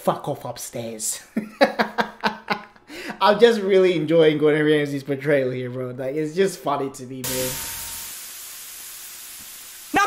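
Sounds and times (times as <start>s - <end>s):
burger patties sizzling on a grill: 7.2s - 10.0s.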